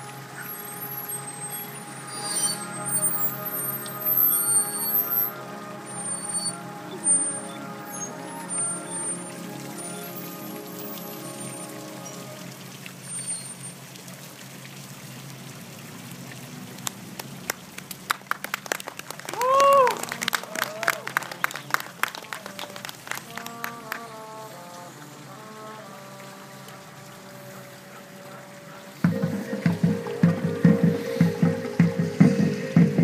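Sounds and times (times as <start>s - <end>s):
people clapping: 16.8s - 24.2s
crowd whooping cheer: 19.2s - 22.8s
marching band chords: 29.0s - 33.0s.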